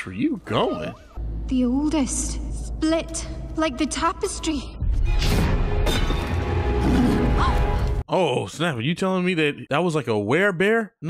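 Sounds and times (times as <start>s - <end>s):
dramatic orchestral music: 3.3s - 8.0s.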